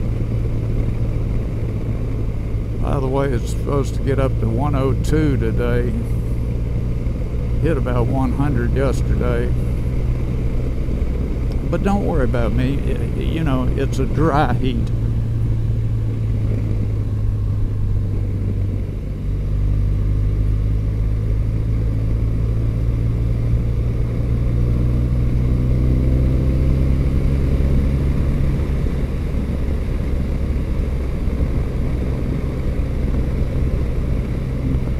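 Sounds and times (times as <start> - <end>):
low wind rumble: 0.0 - 34.9
motorcycle engine running: 0.0 - 34.9.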